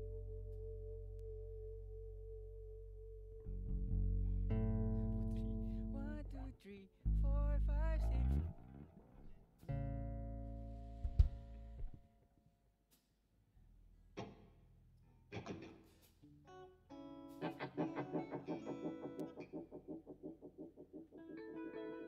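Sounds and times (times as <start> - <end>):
electric guitar chords: 0.0 - 6.3, 7.4 - 12.0, 16.5 - 22.0
bass guitar notes: 0.0 - 12.0.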